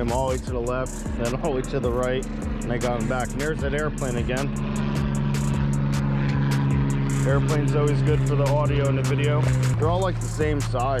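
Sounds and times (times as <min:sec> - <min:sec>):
airplane droning overhead: 0:00.0 - 0:11.0.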